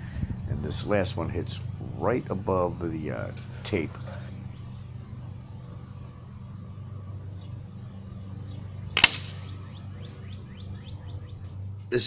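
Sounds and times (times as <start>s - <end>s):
steady low hum: 0.0s - 12.0s
sharp crack: 9.0s - 9.6s.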